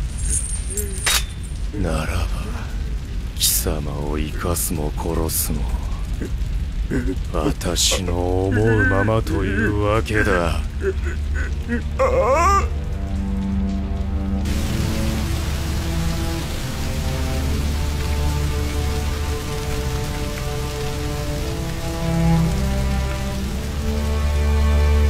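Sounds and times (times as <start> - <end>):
fire burning hiss: 0.0 - 25.0
slow background music: 3.0 - 25.0
deep low drone: 5.7 - 25.0.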